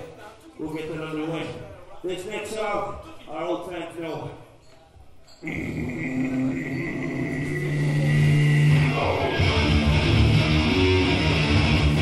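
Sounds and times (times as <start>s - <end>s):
electric guitars ringing note: 5.9s - 12.0s.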